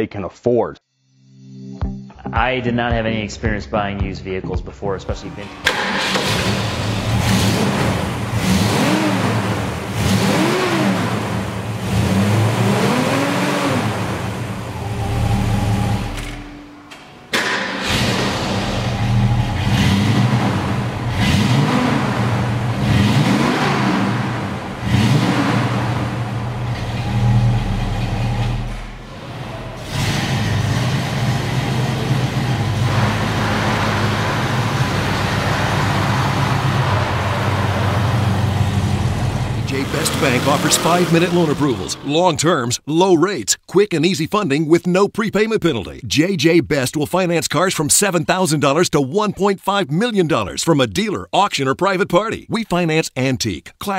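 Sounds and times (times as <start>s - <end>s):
car engine idling with throttle blips: 5.3s - 16.8s, 17.7s - 42.4s.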